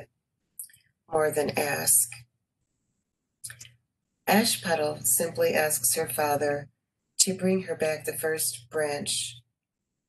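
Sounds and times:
woman speaking: 0:00.6 - 0:02.2, 0:04.3 - 0:09.4.

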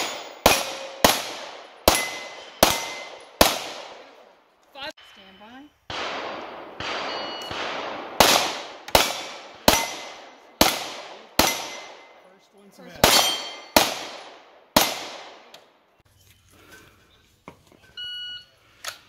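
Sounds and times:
pistol shots: 0:00.0 - 0:04.2, 0:05.9 - 0:12.2, 0:13.0 - 0:15.6
steel plate ringing: 0:01.8 - 0:03.4, 0:07.0 - 0:07.5, 0:13.0 - 0:13.8.

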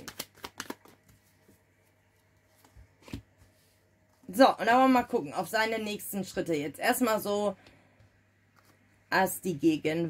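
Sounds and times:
cards shuffled by hand: 0:00.0 - 0:03.5.

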